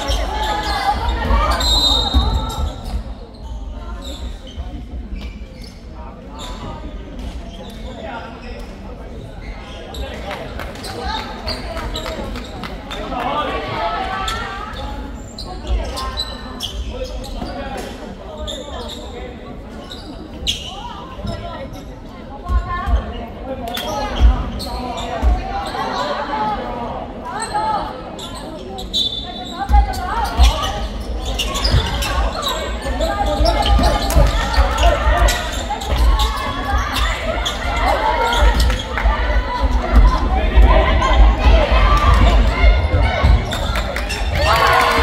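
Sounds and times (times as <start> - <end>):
voices of players and spectators: 0.0 - 45.0.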